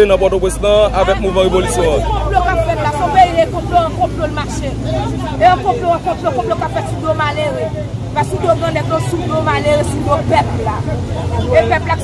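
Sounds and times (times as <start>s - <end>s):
woman speaking excitedly: 1.0s - 12.0s.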